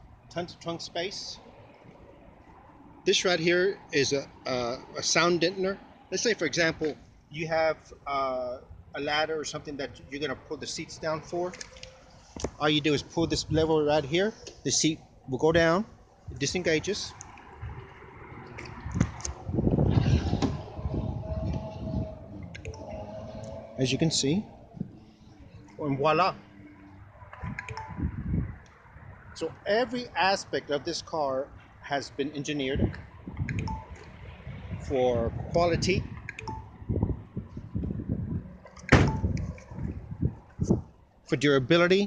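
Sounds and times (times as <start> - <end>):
seatback clunking and rattling: 18.9 - 22.0, 38.6 - 40.8
car trunk lid slamming: 38.9 - 39.3.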